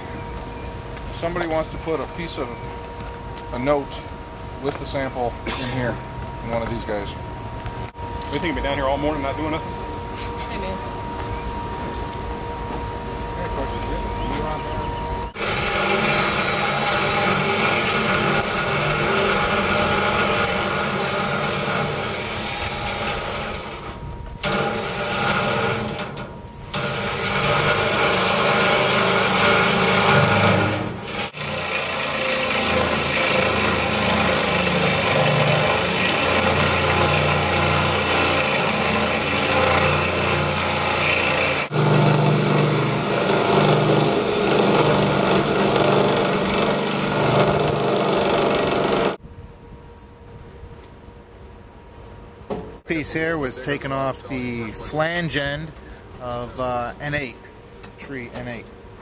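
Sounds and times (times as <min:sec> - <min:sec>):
reciprocating saw cutting steel: 0:15.3 - 0:49.2.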